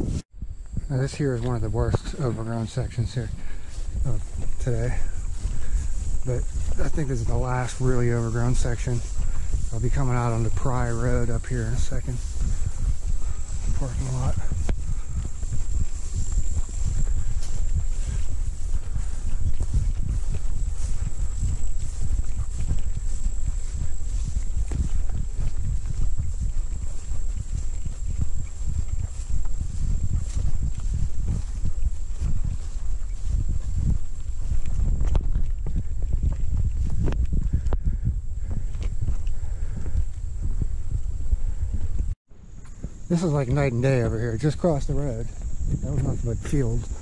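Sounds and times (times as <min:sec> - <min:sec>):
footsteps: 0:00.0 - 0:47.0
brush swishing against body: 0:03.8 - 0:34.8.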